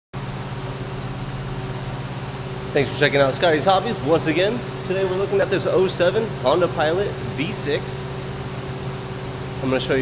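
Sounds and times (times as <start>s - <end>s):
mechanical hum with low drone: 0.2s - 10.0s.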